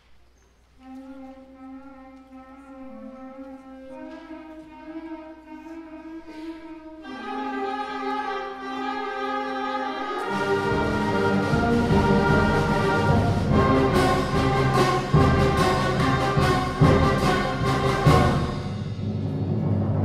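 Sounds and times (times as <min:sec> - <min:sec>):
concert band playing: 0:10.2 - 0:20.0
accented percussion hits: 0:10.3 - 0:20.0.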